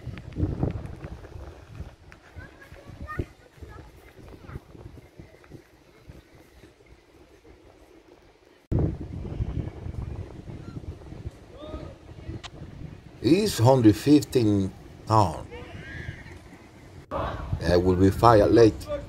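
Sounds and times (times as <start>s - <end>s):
wind rumbling on microphone: 0.0s - 19.0s.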